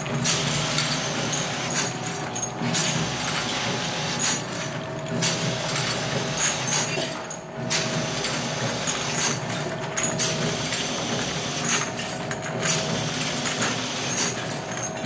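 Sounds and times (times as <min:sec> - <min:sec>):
machine mechanical clatter: 0:00.0 - 0:15.0.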